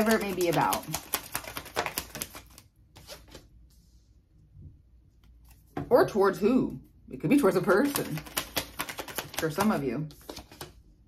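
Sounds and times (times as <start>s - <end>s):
cards shuffling clicks: 0.0s - 3.4s, 7.9s - 10.8s.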